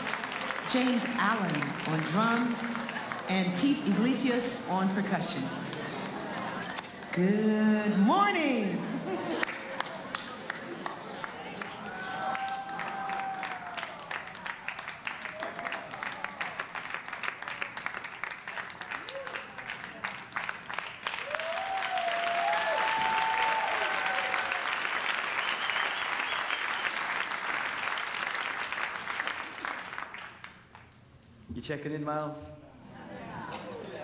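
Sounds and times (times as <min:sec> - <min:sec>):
audience applauding: 0:00.0 - 0:03.6, 0:09.3 - 0:30.9.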